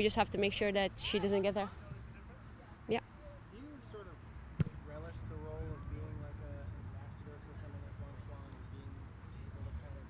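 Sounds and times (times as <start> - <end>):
faint distant voices: 0.0 - 10.0
ball kicked thud: 4.6 - 4.8.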